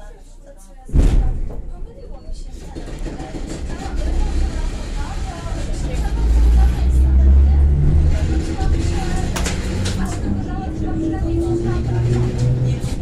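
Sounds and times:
electric train rumbling: 1.8s - 13.0s.

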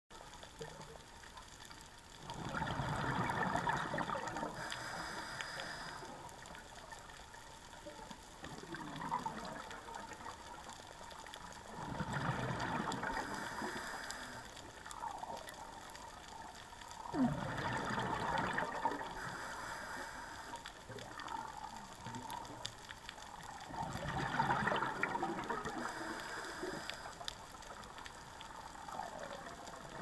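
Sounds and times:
diver's exhaled bubbles rushing: 2.3s - 4.6s, 11.7s - 13.5s, 17.0s - 19.2s, 23.7s - 26.0s
underwater hiss: 2.3s - 7.2s, 11.5s - 21.8s, 23.4s - 27.9s.

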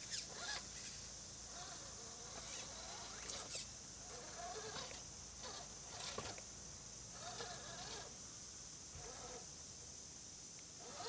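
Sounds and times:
electric motor and gears whining: 0.0s - 8.2s, 8.9s - 9.6s, 10.8s - 11.0s.

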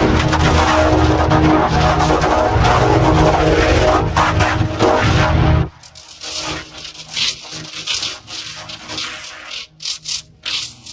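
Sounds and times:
distorted jingle music: 0.0s - 5.8s.

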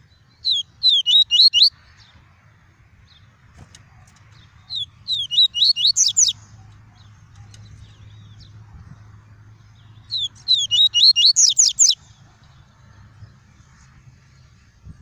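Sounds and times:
bird singing whistled notes: 0.1s - 1.8s, 4.6s - 6.4s, 10.0s - 12.0s.

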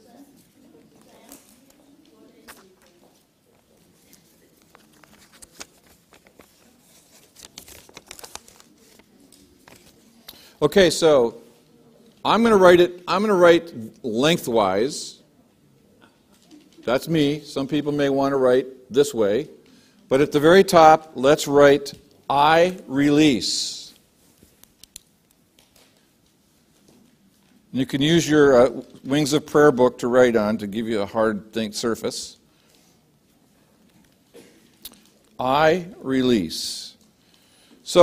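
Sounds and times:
paper and envelopes rustling: 0.1s - 10.3s.

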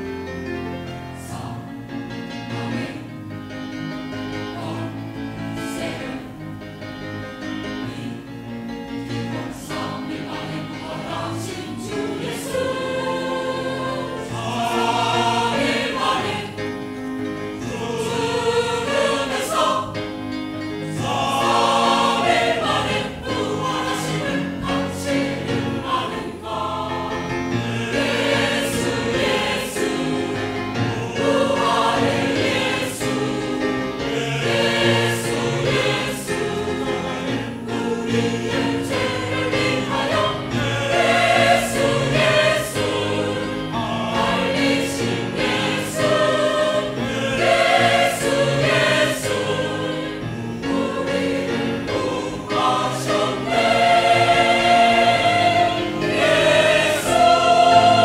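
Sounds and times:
choir singing in harmony: 0.0s - 58.0s.

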